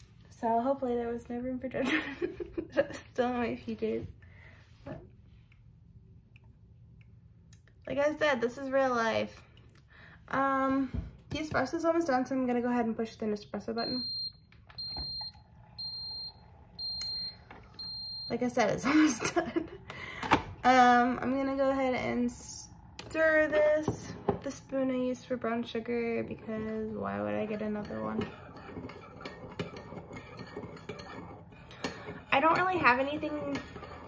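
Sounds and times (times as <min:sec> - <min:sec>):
faint hum: 0:00.0 - 0:29.8
high electronic beeps: 0:13.8 - 0:18.3.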